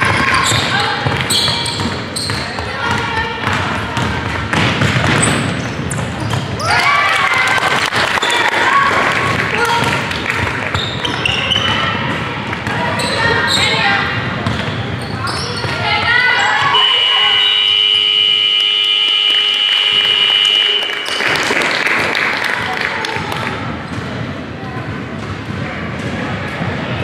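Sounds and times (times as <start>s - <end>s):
players' voices: 0.0s - 27.0s
ball bouncing on hardwood floor: 0.1s - 6.5s
scoreboard buzzer tone: 16.8s - 21.2s.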